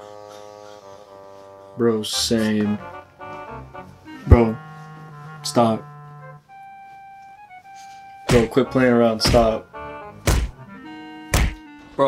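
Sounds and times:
soft background music: 0.0 - 12.0
pillow blows thumping: 9.2 - 9.6, 10.2 - 10.6.

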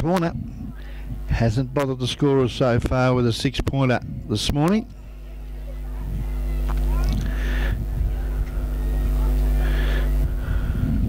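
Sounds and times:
electrical mains hum: 0.0 - 11.0
faint voices: 0.0 - 11.0.

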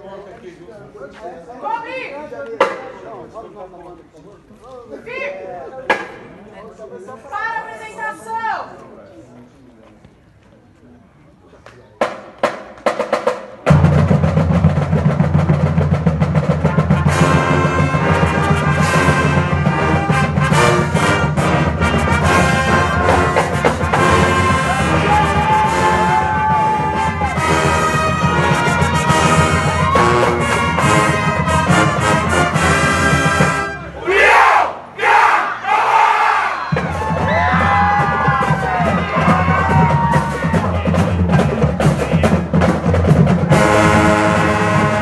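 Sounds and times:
drums: 12.0 - 45.0
low brass: 16.4 - 35.4, 43.5 - 45.0
crowd shouting together: 22.0 - 30.8, 34.0 - 40.6.

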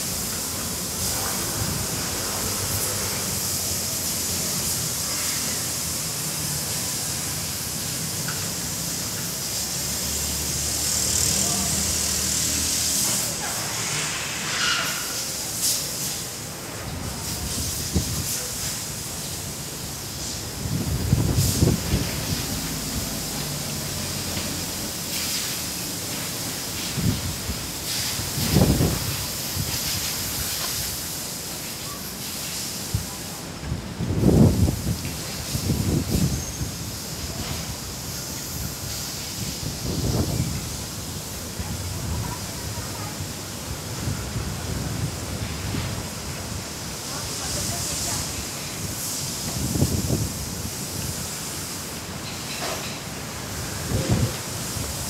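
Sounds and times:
strong gusty wind: 0.0 - 7.9, 16.2 - 25.3, 26.6 - 31.2, 32.8 - 51.4, 53.3 - 55.0
wind buffeting microphone: 17.0 - 18.6, 20.4 - 23.1, 26.8 - 30.6, 32.9 - 37.8, 38.5 - 42.7, 49.4 - 51.2, 53.7 - 54.9.

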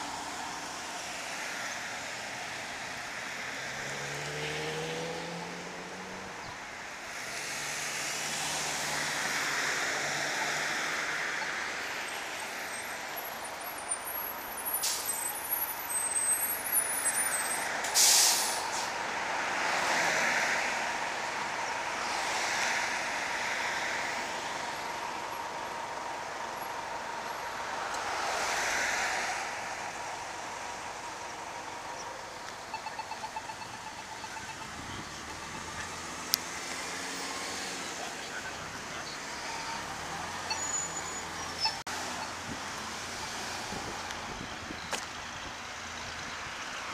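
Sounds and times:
cars passing: 0.0 - 46.9
short loud hiss: 18.0 - 18.7.

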